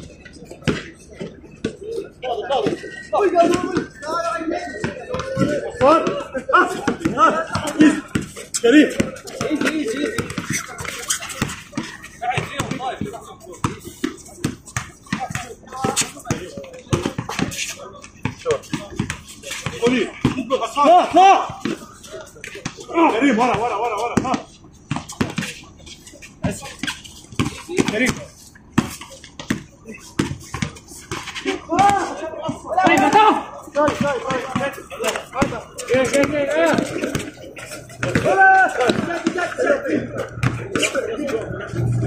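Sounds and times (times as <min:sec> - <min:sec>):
players calling out: 0:00.0 - 0:42.0
basketball bouncing on hard court: 0:12.4 - 0:13.8, 0:38.0 - 0:39.4.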